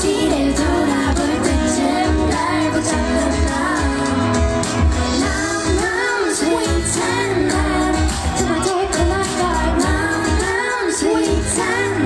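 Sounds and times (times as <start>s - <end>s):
backing track drum beat: 0.0s - 12.0s
woman singing into microphone: 0.0s - 12.0s.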